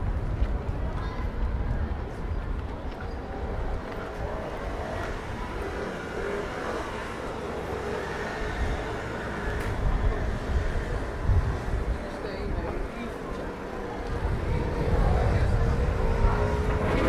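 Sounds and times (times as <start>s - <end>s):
faint voices of passers-by: 0.0s - 17.0s
traffic rumble: 0.0s - 17.0s.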